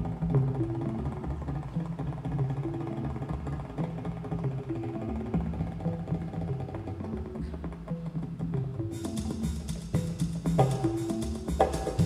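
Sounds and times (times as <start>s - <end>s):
quick percussive hits: 7.4s - 12.0s.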